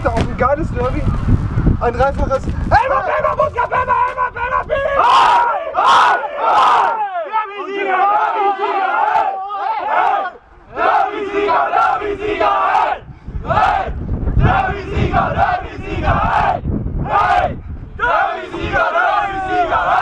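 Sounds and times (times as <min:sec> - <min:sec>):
men shouting a chant: 0:02.7 - 0:20.0.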